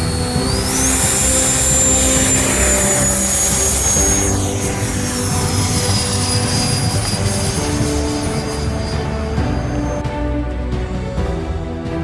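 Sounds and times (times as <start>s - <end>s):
model jet engine whine: 0.0s - 10.1s.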